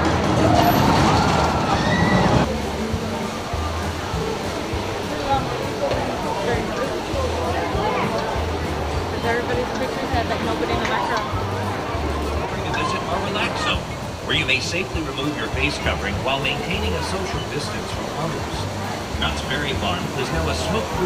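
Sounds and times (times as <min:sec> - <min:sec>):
crowd talking: 0:00.0 - 0:21.0
roller coaster on track: 0:00.0 - 0:21.0
riders' voices: 0:02.6 - 0:21.0.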